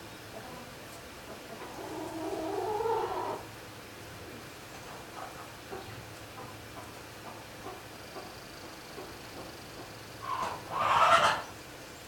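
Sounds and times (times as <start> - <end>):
poultry bird call: 10.2 - 11.6.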